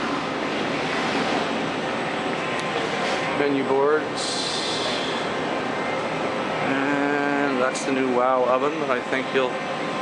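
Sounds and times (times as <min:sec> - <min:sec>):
ventilation fans rushing: 0:00.0 - 0:10.0.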